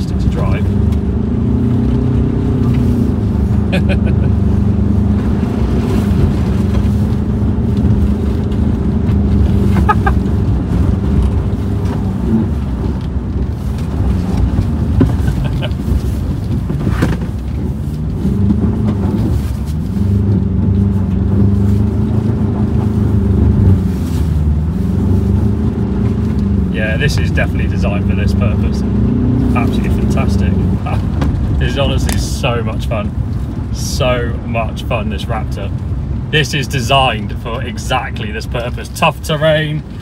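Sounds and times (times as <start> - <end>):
diesel engine working hard: 0.0 - 40.0.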